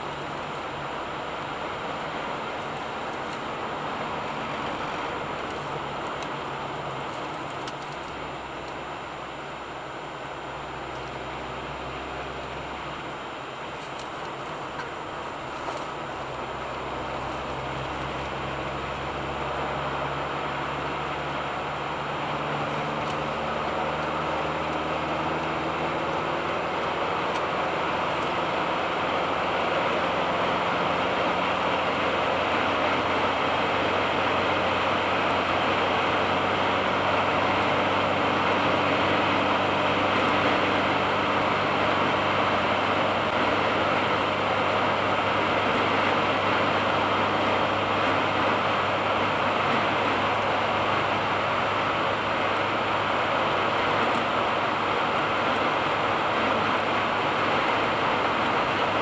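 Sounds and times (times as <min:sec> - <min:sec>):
low engine hum: 0:00.0 - 0:59.0.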